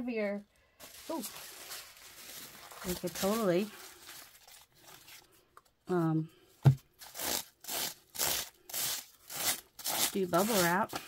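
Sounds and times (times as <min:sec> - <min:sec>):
bubble wrap crinkling under sponge: 0:00.8 - 0:06.2, 0:07.0 - 0:11.0.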